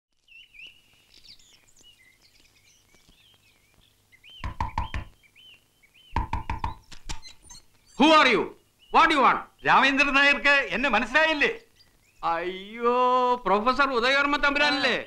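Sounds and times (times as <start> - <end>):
faint bird chirps: 0.2 - 13.2
knuckles knocking on wooden door: 4.4 - 5.1, 6.2 - 6.8.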